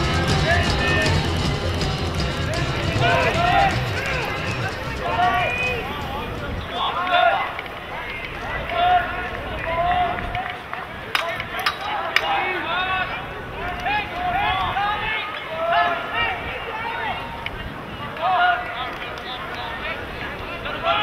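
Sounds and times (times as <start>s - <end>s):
sharp clacks: 0.0s - 12.5s
people shouting and calling out: 0.0s - 21.0s.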